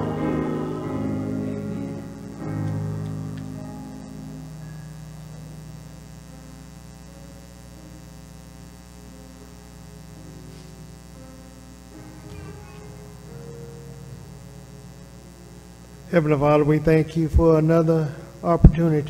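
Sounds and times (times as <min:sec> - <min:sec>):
electrical mains hum: 0:00.0 - 0:19.0
soft held keyboard notes: 0:00.0 - 0:19.0.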